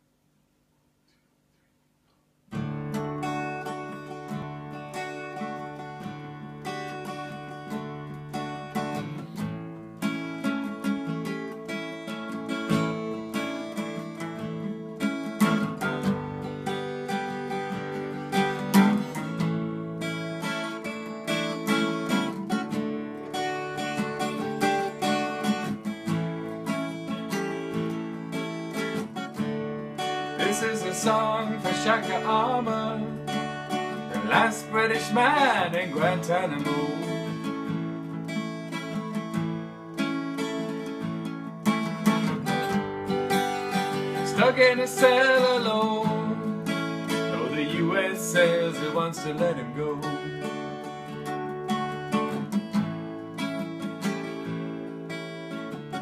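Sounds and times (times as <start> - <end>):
two acoustic guitars playing: 2.5 - 56.0.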